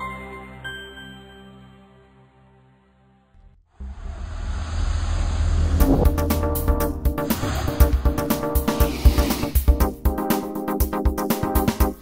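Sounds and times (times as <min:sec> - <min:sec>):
rising whoosh with deep rumble: 0:03.9 - 0:08.4
electronic music with percussive hits: 0:05.8 - 0:12.0.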